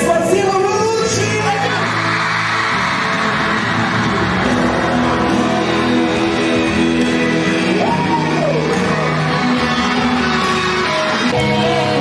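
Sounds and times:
live pop-rock band: 0.0 - 12.0
person singing: 4.5 - 12.0.

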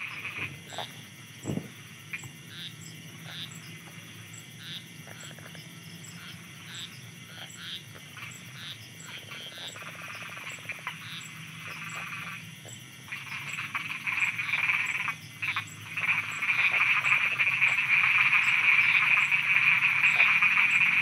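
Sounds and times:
frogs croaking: 0.0 - 21.0.

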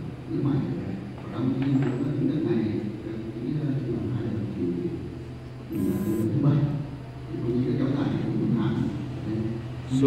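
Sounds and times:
steady low hum: 2.6 - 10.0.

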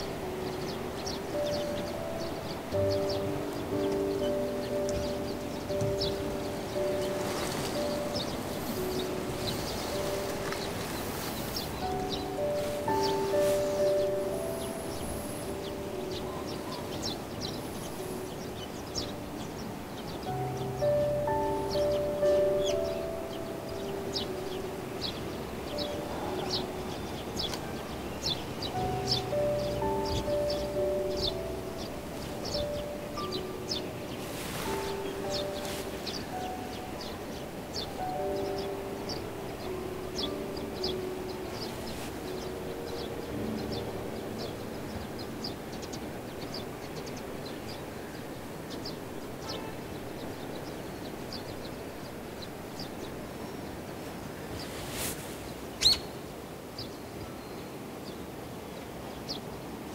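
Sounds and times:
high bird chirps: 0.0 - 47.8, 55.8 - 56.2
soft background music: 0.0 - 59.9.

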